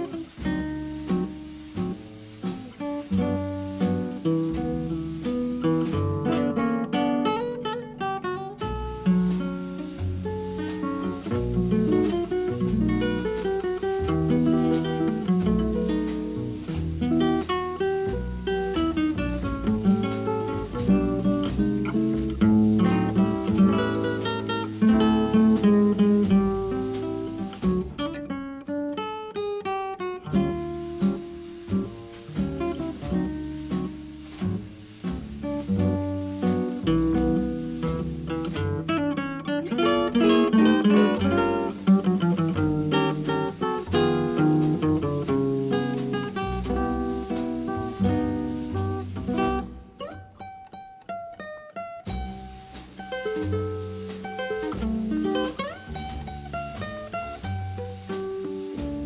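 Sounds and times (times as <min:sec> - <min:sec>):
plucked acoustic guitar: 0:00.0 - 0:59.0.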